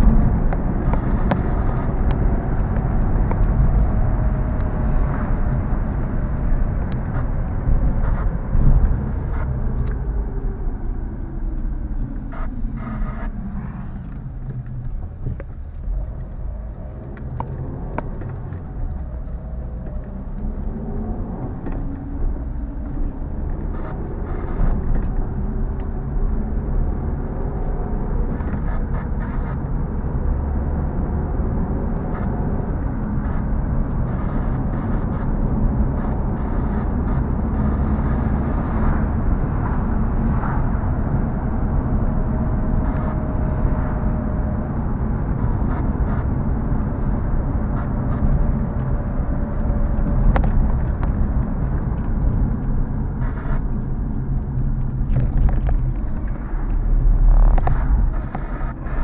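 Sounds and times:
car engine from inside cabin: 0.0 - 59.0.

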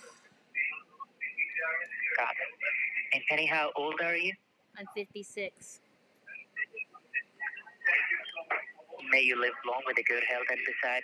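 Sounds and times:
speech over telephone line: 0.6 - 11.0.

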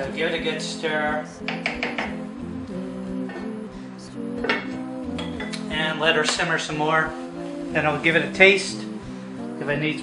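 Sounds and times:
acoustic guitar music: 0.0 - 10.0.

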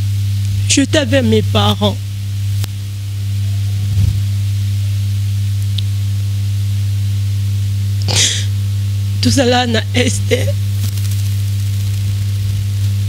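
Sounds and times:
electrical hum with hiss: 0.0 - 13.0.

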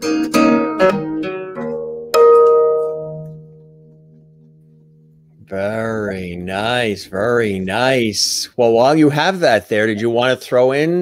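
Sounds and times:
classical guitar chord ringing: 0.0 - 5.4.

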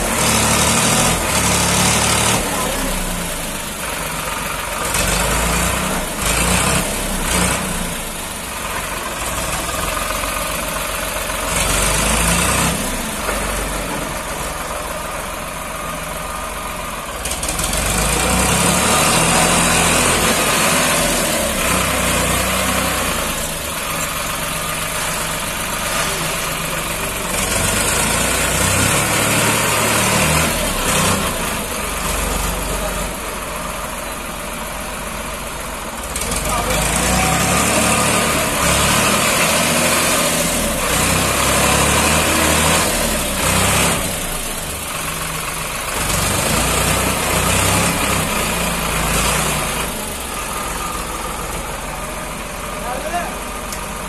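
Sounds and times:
dozer blade pushing soil: 0.0 - 54.0
tractor diesel engine under load: 0.0 - 54.0.

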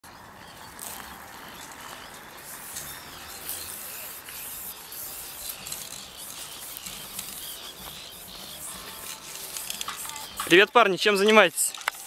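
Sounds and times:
spray paint can hissing: 0.2 - 12.0.

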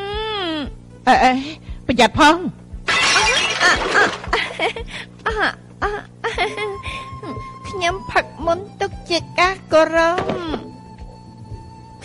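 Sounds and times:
woman's voice: 0.0 - 2.6, 5.2 - 6.8, 7.6 - 10.7
ceramic jar smashing: 2.9 - 4.5.

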